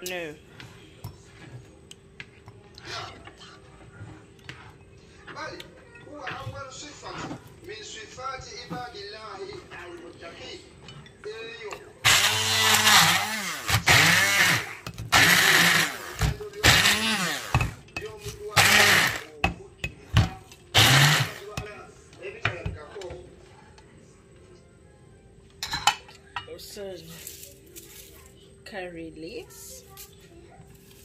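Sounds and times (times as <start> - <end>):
stick blender pulsing: 12.0 - 17.8, 18.5 - 19.3, 20.7 - 21.5.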